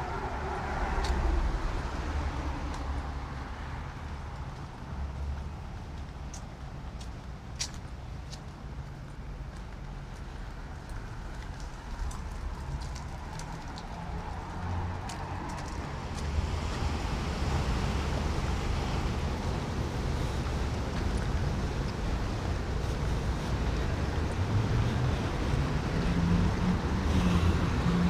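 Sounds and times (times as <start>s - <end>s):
car traffic rumble: 0.0s - 28.0s.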